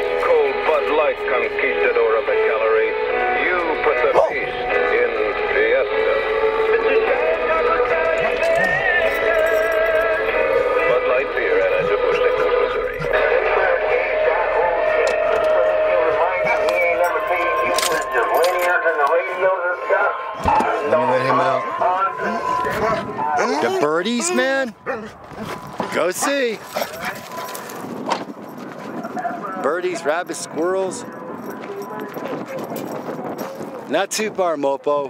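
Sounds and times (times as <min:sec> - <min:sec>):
music with singing over cb radio: 0:00.0 - 0:23.4, 0:29.2 - 0:33.4.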